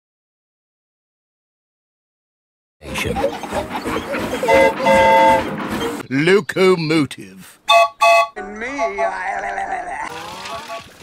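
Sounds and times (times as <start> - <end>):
steam locomotive whistle: 4.4 - 5.5, 7.7 - 8.4.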